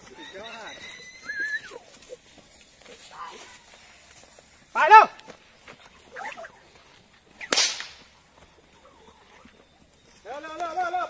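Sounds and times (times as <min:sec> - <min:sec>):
whip crack: 0:07.4 - 0:08.2.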